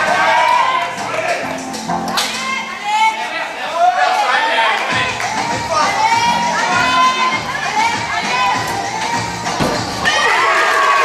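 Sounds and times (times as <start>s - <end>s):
crowd cheering and shouting: 0.0s - 9.3s, 9.9s - 11.0s
landing thud on mat: 9.5s - 10.2s.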